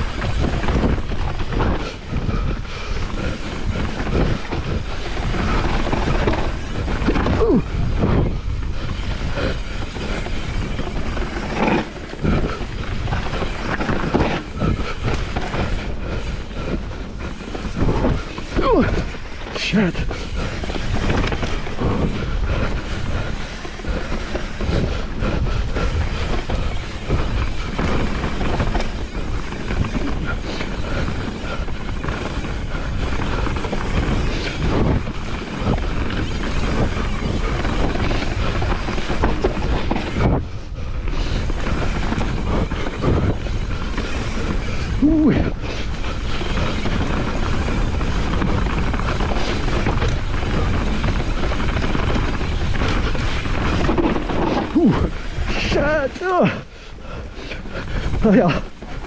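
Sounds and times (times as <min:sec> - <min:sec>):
bike rattling and knocking: 0:00.0 - 0:59.0
bike tyres rolling over dirt: 0:00.0 - 0:59.0
steady rushing noise: 0:00.0 - 0:59.0.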